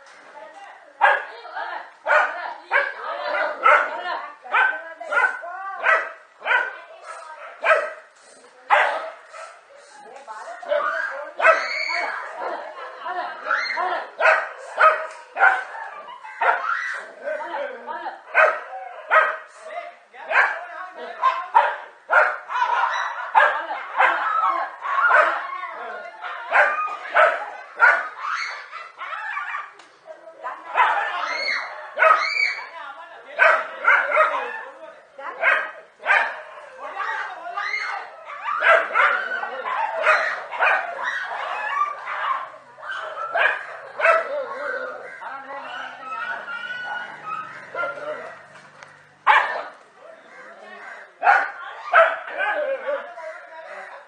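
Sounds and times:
dogs barking and yelping: 2.1s - 8.1s, 10.6s - 19.5s, 20.3s - 29.8s, 30.5s - 54.0s.

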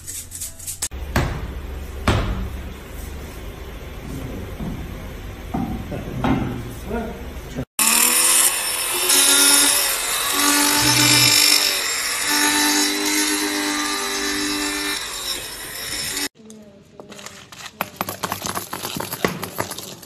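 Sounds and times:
electric cloth cutter motor whine: 7.8s - 16.3s.

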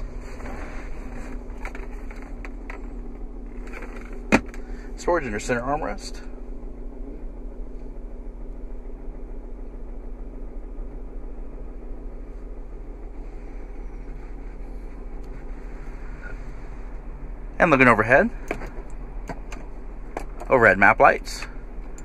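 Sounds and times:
low hum inside car cabin: 0.0s - 22.0s.

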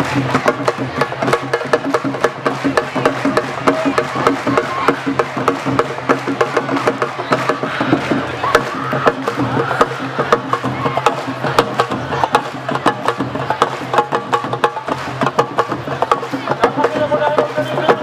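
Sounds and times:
rapid drum strokes: 0.0s - 18.0s.

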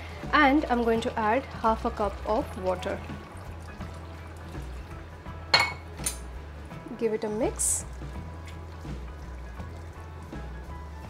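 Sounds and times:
water pouring into a pan: 0.0s - 6.0s, 7.2s - 11.0s
background music: 0.0s - 11.0s
kitchenware clink: 5.5s - 6.3s.

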